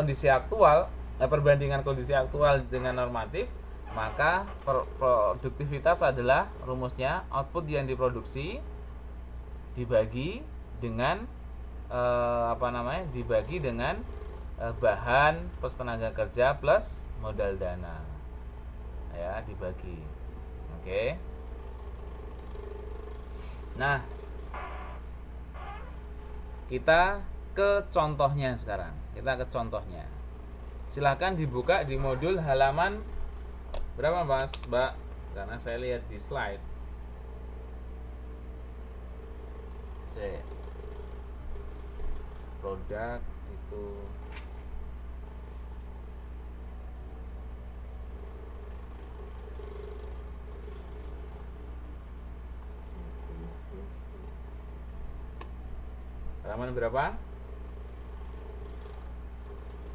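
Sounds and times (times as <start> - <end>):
low background hum: 0.0 - 59.9
faint high steady tone: 52.8 - 54.4.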